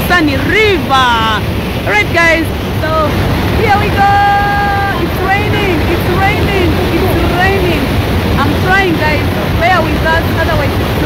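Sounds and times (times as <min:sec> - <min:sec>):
river rushing: 0:00.0 - 0:11.0
waterfall roaring: 0:00.0 - 0:11.0
people calling out: 0:03.6 - 0:09.2.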